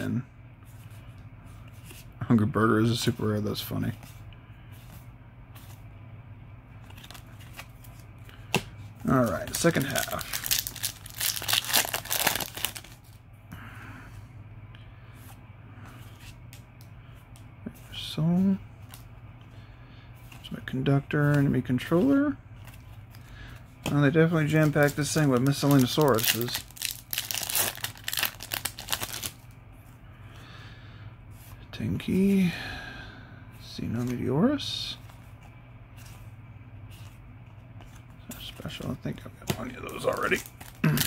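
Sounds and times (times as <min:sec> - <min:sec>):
foil pack tearing and crinkling: 0:09.6 - 0:13.0, 0:24.8 - 0:29.4.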